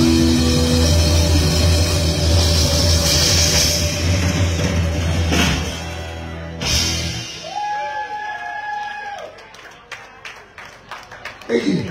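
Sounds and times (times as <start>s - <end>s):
live rock band playing: 0.0s - 7.8s.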